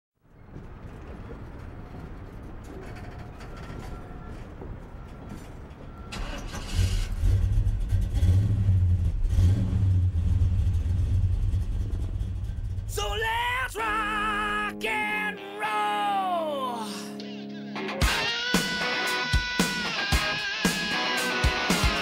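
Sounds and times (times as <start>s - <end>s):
car engine idling and revving: 6.1s - 13.0s.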